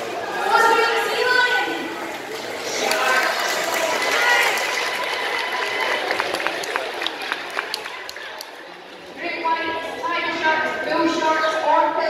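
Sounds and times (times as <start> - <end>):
audience chatter: 0.0 - 12.0
speech echoing in a hall: 0.0 - 12.0.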